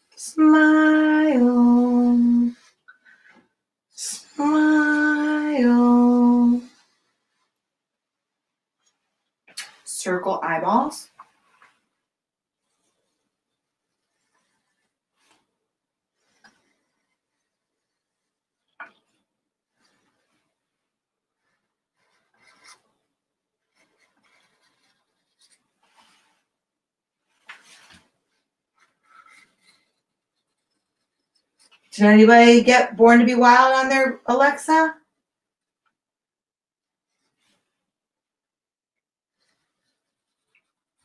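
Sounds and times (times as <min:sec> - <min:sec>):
marker scratching on canvas: 0:12.6 - 0:15.5, 0:16.2 - 0:19.2, 0:21.4 - 0:26.5, 0:27.3 - 0:32.0, 0:39.3 - 0:41.0.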